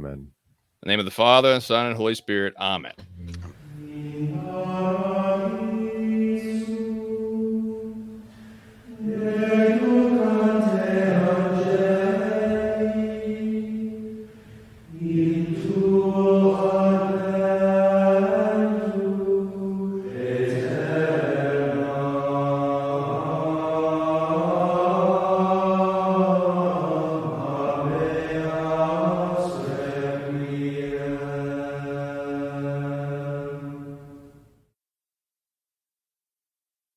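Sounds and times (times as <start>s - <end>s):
voices chanting without instruments: 3.0s - 34.2s.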